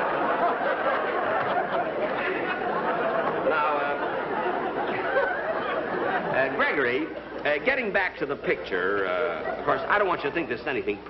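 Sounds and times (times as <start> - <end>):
audience laughing: 0.0 - 10.4.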